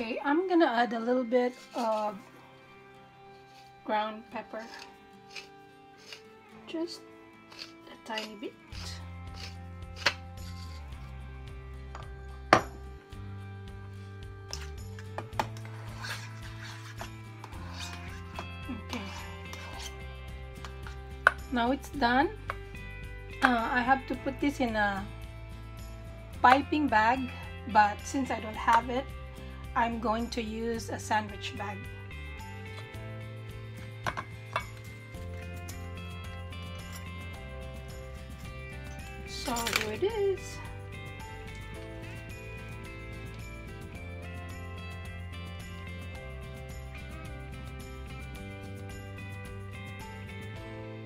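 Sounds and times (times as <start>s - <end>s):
background music low tones: 0.0s - 51.0s
utensil scraping metal bowl: 1.3s - 2.3s, 3.3s - 6.4s, 7.4s - 11.2s, 15.5s - 21.5s.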